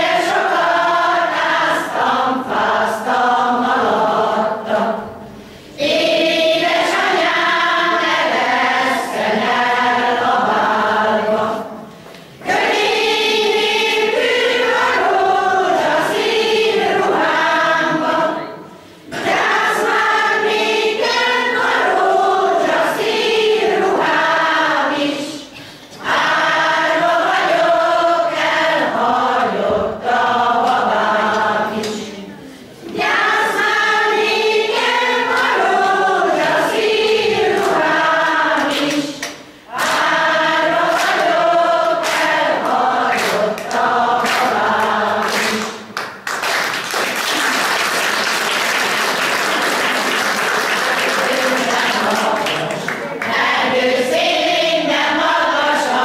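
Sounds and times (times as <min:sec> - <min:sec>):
choir singing in unison: 0:00.0 - 0:46.0, 0:48.0 - 0:56.0.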